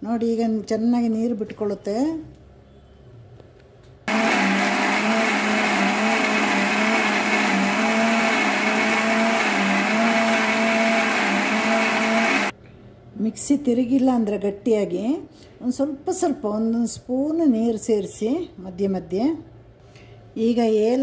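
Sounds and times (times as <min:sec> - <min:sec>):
electric mixer grinder running: 0:04.1 - 0:12.5.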